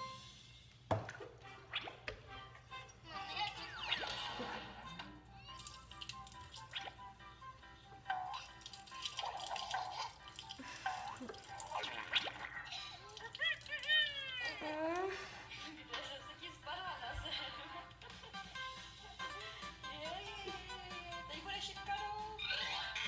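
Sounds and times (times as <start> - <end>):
music from phone: 0.0 - 13.4, 14.6 - 23.0
voices from phone video: 19.2 - 23.0.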